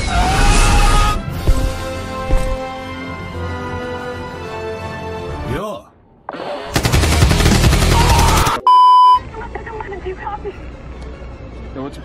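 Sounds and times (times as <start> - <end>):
loud rapid rattling: 6.8 - 8.6
censor bleep: 8.6 - 9.2.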